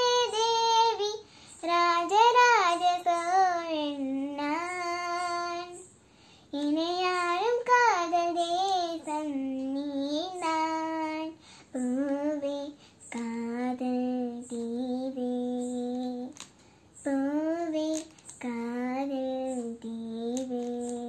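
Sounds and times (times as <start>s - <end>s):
girl singing unaccompanied: 0.0s - 21.0s.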